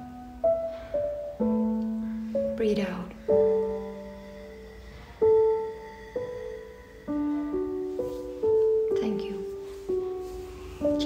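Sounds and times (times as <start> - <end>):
slow gentle piano music: 0.0 - 11.0.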